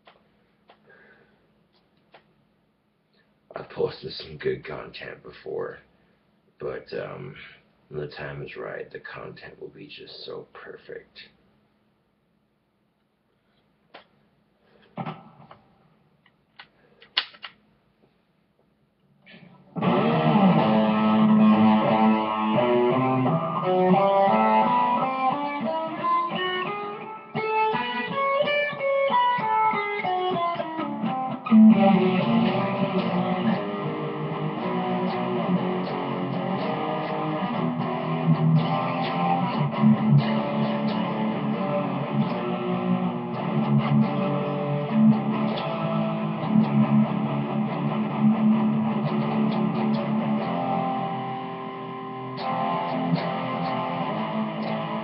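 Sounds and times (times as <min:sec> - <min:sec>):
solo guitar playing: 0:19.7 - 0:55.0.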